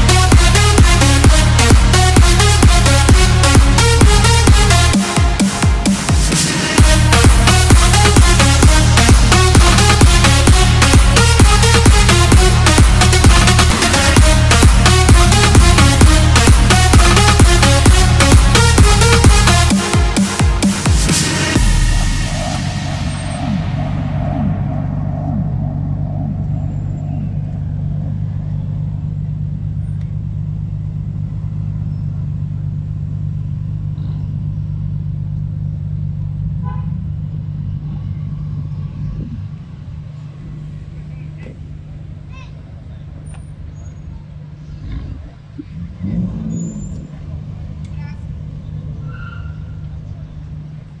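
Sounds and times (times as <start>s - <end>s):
car engines at low revs: 0.0s - 51.0s.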